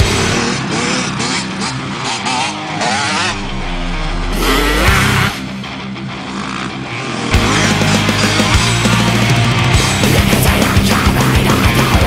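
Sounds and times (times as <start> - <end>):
dirt bike engine revving: 0.0 - 11.9
loud rock music: 0.0 - 12.0.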